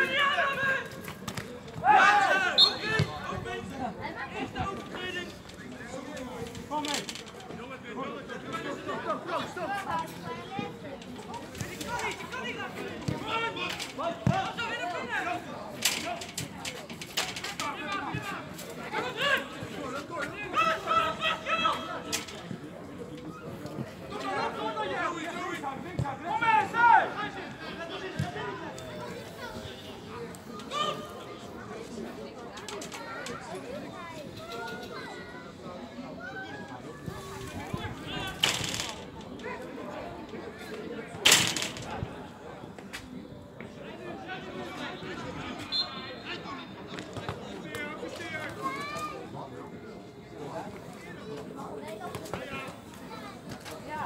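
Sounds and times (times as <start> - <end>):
footballers shouting and calling: 0.0 - 54.0
indistinct voices chattering: 0.0 - 54.0.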